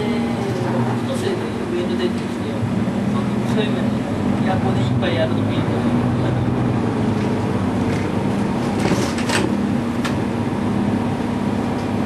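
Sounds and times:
bus engine humming: 0:00.0 - 0:12.0
road noise: 0:00.0 - 0:12.0.

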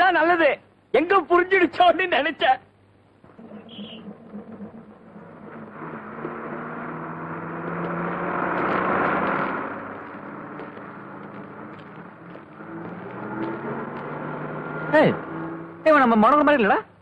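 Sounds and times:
bus engine driving past: 0:03.3 - 0:15.8.

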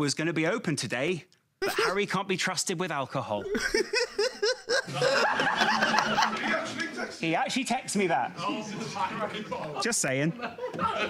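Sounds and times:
man chuckling: 0:03.4 - 0:06.4
audience laughing: 0:03.5 - 0:07.2, 0:08.4 - 0:11.0.

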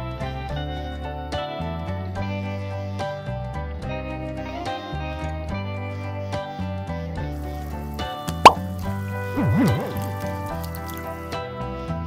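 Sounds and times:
background music: 0:00.0 - 0:12.0
upward-sweeping plop: 0:08.4 - 0:08.6, 0:09.4 - 0:10.3
swooping pitch sound: 0:09.4 - 0:10.3.

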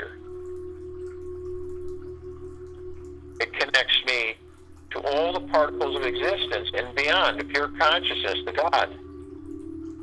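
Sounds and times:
low steady hum: 0:00.0 - 0:10.0
soft meditation music: 0:00.0 - 0:10.0.

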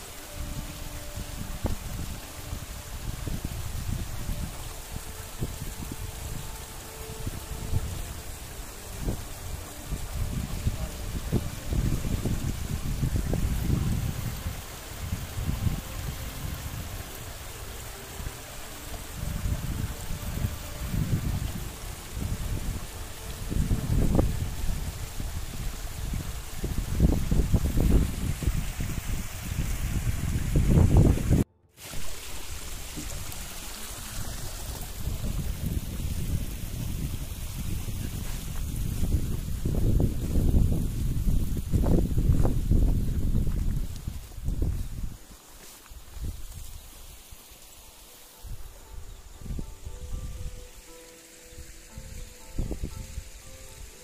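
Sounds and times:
wind gusting over microphone: 0:00.0 - 0:45.3
stream trickling over rocks: 0:00.0 - 0:54.0.

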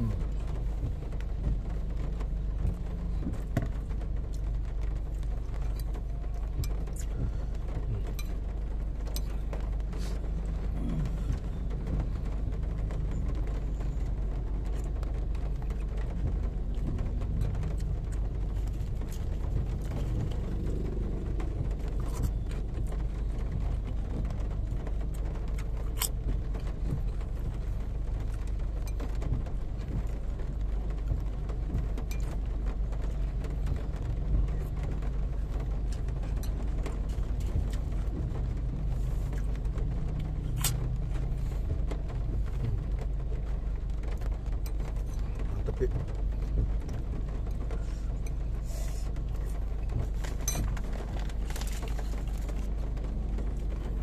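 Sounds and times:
car idling rumble: 0:00.0 - 0:54.0.

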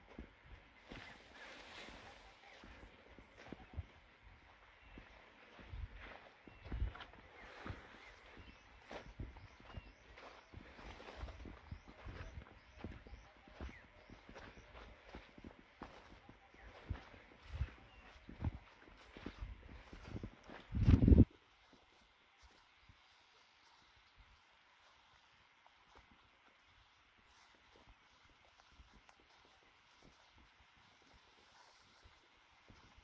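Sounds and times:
footsteps in sandals on dirt path: 0:00.0 - 0:33.0
brushing through bush: 0:00.8 - 0:03.8, 0:26.8 - 0:33.0.

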